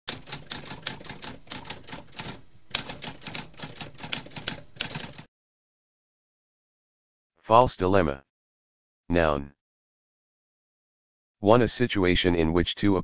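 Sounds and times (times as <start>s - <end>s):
typewriter keys clattering: 0.1s - 5.3s.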